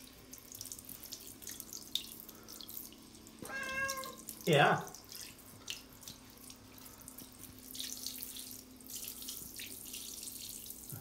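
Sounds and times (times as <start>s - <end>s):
shower water spraying on tiles: 0.0s - 11.0s.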